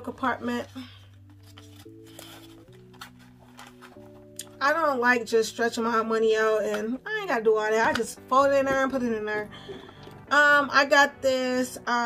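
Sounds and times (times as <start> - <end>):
soft background music chords: 0.0 - 12.0
paper money rustling: 1.0 - 4.4
wallet being handled: 1.2 - 4.4.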